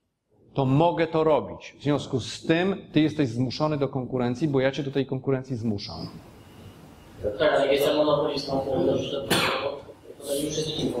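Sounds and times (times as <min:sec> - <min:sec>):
person speaking: 0:07.2 - 0:11.0
person coughing: 0:09.3 - 0:09.8.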